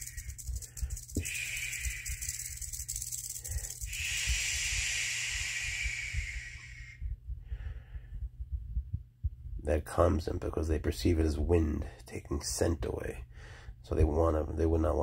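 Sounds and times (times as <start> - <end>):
person shushing: 0.0 - 2.7, 3.6 - 7.0
quick breaths: 0.0 - 8.7, 13.3 - 13.8.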